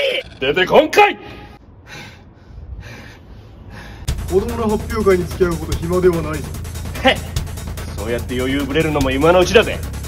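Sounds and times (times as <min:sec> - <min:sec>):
man breathing hard: 0:01.6 - 0:04.2.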